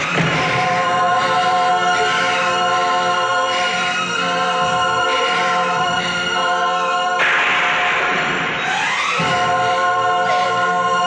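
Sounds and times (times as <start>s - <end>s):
choir singing held notes: 0.0s - 11.0s.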